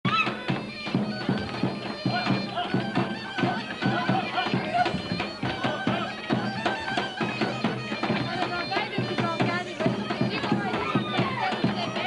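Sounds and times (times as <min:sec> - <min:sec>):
bagpipe playing folk dance tune: 0:00.1 - 0:12.0
large drum beating: 0:00.1 - 0:12.0.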